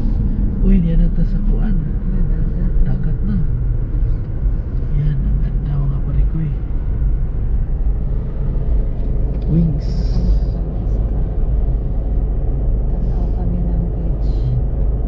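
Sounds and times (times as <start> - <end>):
car road and engine noise: 0.0 - 15.0.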